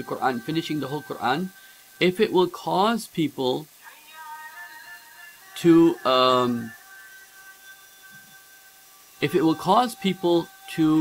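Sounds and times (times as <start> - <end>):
soft voiced sound: 0.0 - 6.8
recording hiss: 0.0 - 11.0
thin electrical hum: 0.0 - 11.0.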